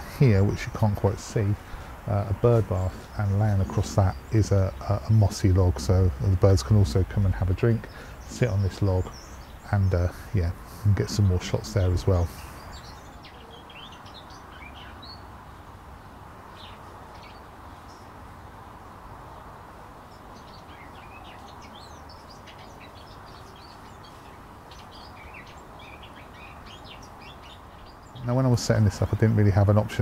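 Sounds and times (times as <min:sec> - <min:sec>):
small birds chirping: 0:00.0 - 0:30.0
steady background hiss: 0:00.0 - 0:30.0.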